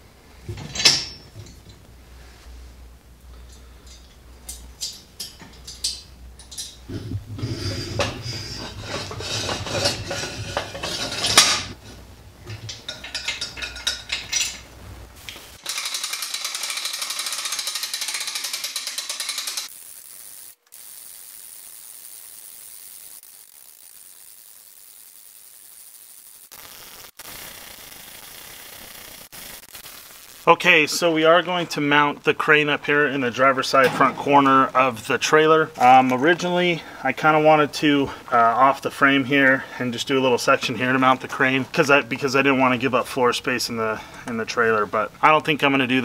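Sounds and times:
quiet steady hiss: 0.0 - 15.6, 29.3 - 46.0
metal knocks and rattles: 4.6 - 11.8, 12.4 - 14.7
winch ratchet clicking: 15.6 - 20.5.

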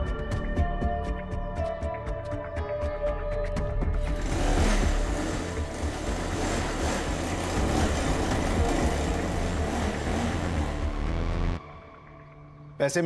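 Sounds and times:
motorcycle engine riding off: 4.0 - 11.6.

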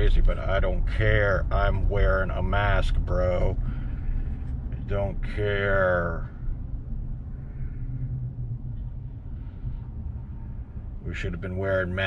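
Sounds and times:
vehicle rumble from inside cabin: 0.0 - 12.0.

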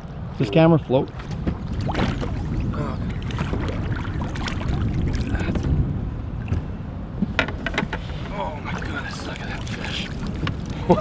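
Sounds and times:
wind rumble on microphone: 0.0 - 11.0
water splashes: 1.0 - 6.7, 8.1 - 11.0.

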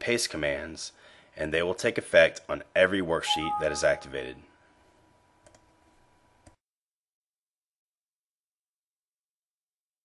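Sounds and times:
faint computer mouse clicks: 5.4 - 5.7.

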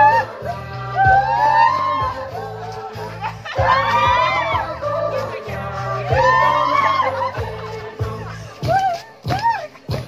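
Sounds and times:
music: 0.0 - 10.0
people singing and calling out: 0.0 - 10.0.

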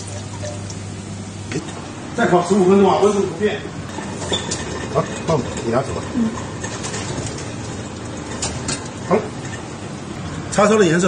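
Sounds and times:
fan oven whirring: 0.0 - 11.0.

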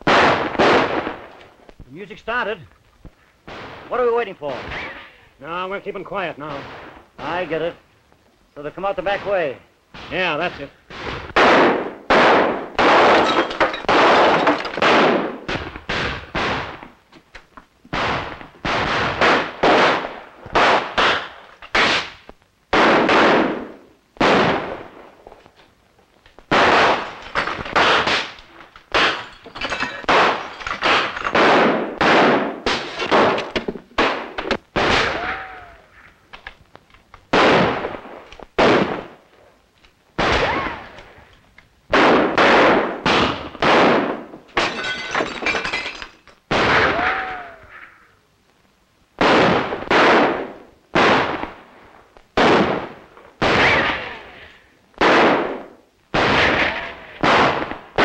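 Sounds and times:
echoing gunshots: 0.0 - 1.4, 3.4 - 5.0, 6.4 - 7.5, 9.1 - 16.8, 17.9 - 25.1, 26.5 - 29.3, 30.0 - 35.3, 37.3 - 39.2, 41.9 - 44.3, 49.2 - 51.6, 52.4 - 54.3, 55.0 - 58.0
glass breaking: 13.0 - 15.0, 27.0 - 31.6, 32.7 - 33.7, 44.5 - 46.4.

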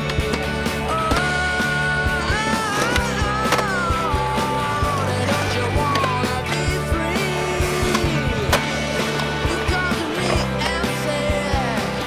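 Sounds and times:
rock music: 0.0 - 12.0
skateboard wheels rolling on concrete: 0.0 - 12.0.

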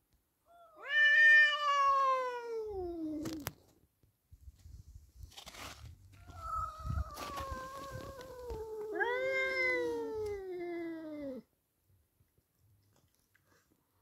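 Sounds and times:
tomcat yowling: 0.7 - 3.4, 6.3 - 11.4.

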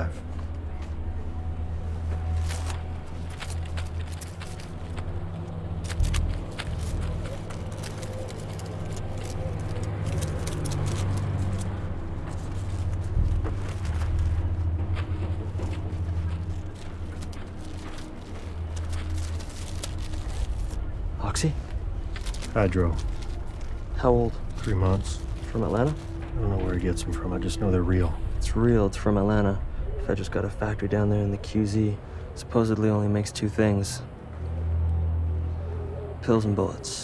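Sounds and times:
low steady rumble: 0.0 - 35.7
faint clicks and rustles: 2.0 - 20.9, 21.5 - 27.1.

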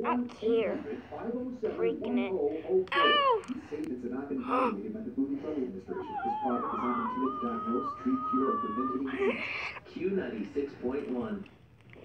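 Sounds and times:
person talking: 0.0 - 3.8, 5.9 - 11.5
child's high-pitched wavering wail: 6.0 - 9.6.

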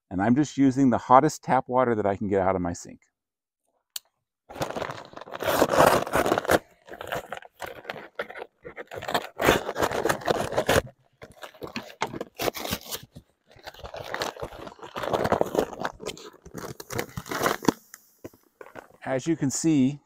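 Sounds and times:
paper sugar bag tearing and crinkling: 4.5 - 17.9.

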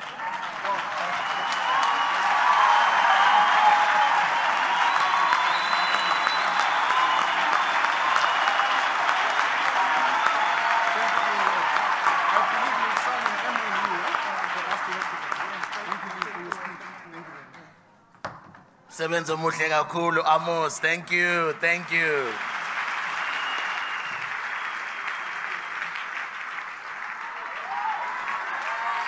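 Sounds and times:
audience applauding and cheering: 0.0 - 17.5, 19.3 - 29.0.

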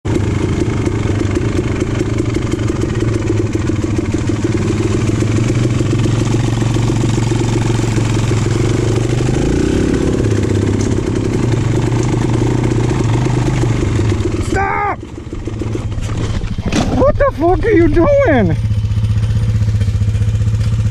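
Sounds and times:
dirt bike engine running: 0.0 - 20.9
person yelling: 14.4 - 15.1, 16.8 - 18.6.

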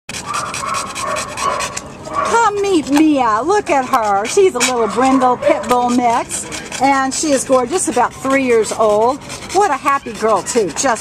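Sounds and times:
dog panting: 0.1 - 11.0.

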